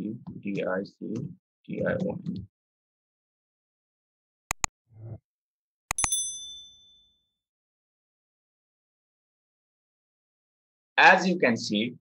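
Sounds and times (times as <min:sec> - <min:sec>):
sharp mouse click: 0:04.5 - 0:04.7, 0:05.9 - 0:06.2
notification bell ding: 0:05.9 - 0:07.1.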